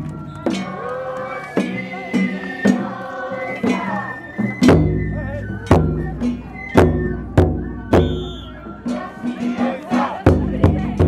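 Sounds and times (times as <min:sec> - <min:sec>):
group of voices singing: 0:00.0 - 0:04.8, 0:07.8 - 0:11.0.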